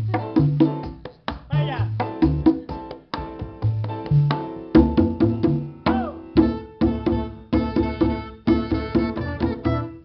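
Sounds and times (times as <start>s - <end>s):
conga drums: 0.0s - 10.0s.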